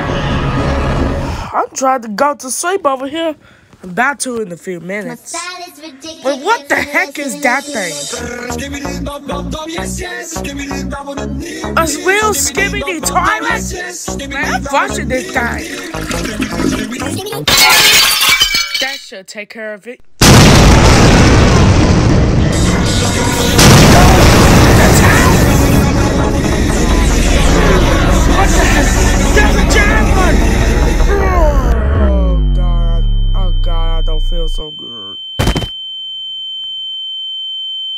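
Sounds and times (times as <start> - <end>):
background music: 8.0 - 17.4, 22.6 - 32.5
loud shattering crash: 17.5 - 19.0, 20.2 - 30.7
faint lower tone: 31.8 - 37.9
high-pitched electronic beep tone: 32.0 - 37.9.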